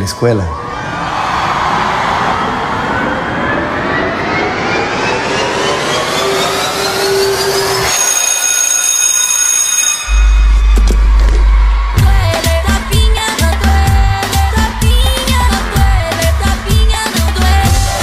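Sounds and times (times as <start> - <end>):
synthesized riser tones: 1.9 - 12.2.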